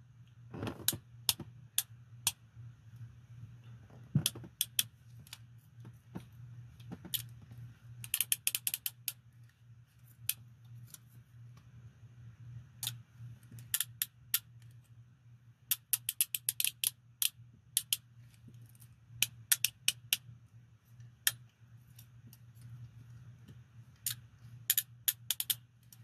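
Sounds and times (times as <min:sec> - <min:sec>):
handcuff ratchet clicks: 0:04.6 - 0:04.9, 0:08.0 - 0:09.2, 0:13.6 - 0:14.5, 0:15.7 - 0:18.0, 0:24.0 - 0:26.0.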